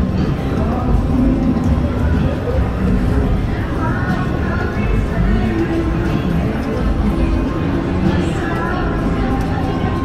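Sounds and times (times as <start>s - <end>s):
background music: 0.0s - 10.0s
indistinct voices: 0.0s - 10.0s.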